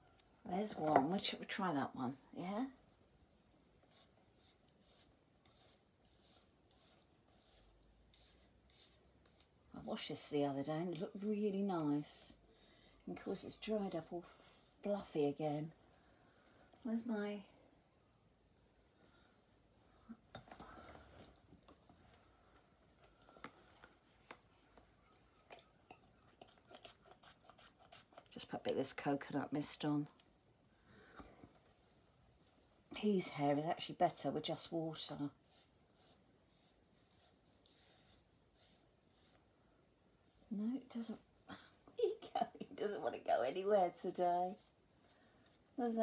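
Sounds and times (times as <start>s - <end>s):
hairbrush swishing strokes: 3.9s - 9.6s, 35.0s - 39.5s.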